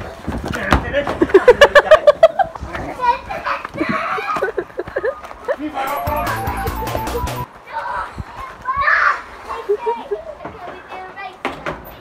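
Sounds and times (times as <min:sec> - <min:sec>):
children laughing: 0:01.2 - 0:07.2, 0:09.2 - 0:10.6
children's voices: 0:02.7 - 0:05.1, 0:07.5 - 0:12.0.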